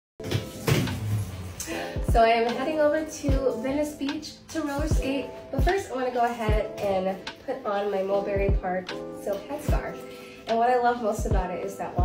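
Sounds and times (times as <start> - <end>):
background music: 0.2 - 12.0.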